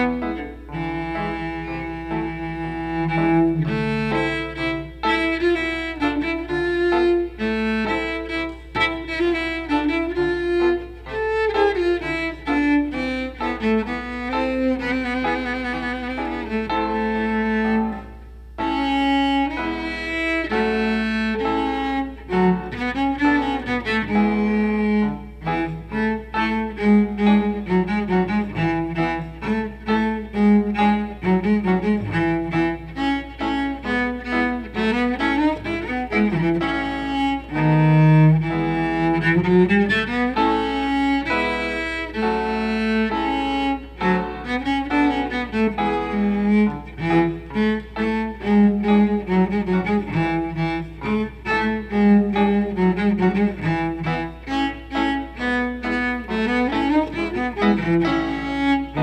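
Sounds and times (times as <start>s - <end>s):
cello melody: 0.0s - 59.0s
piano accompaniment: 0.0s - 59.0s.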